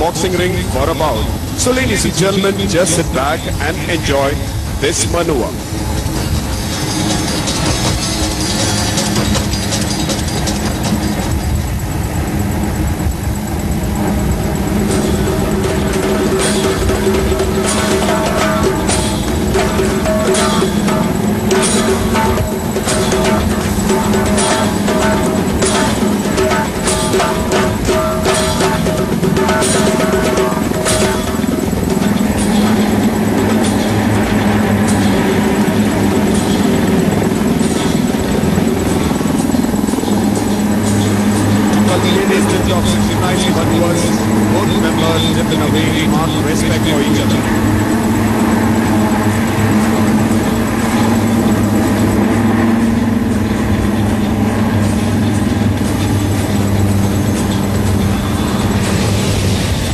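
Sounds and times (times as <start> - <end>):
indistinct voices: 0.0 - 11.4, 13.8 - 52.4
helicopter rotor and engine drone: 0.0 - 59.9
music: 0.0 - 59.9.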